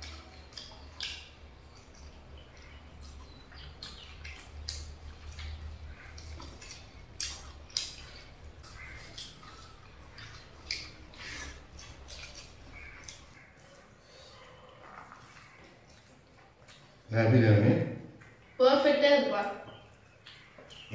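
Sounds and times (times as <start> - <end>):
wet chewing and smacking: 0.0 - 17.1, 18.1 - 18.6, 19.5 - 20.9
low steady hum: 0.0 - 20.9.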